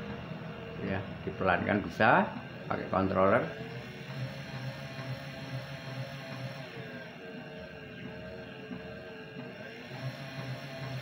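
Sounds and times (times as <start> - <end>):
electric motor humming: 0.0 - 11.0
faint wavering gearbox whine: 0.0 - 11.0.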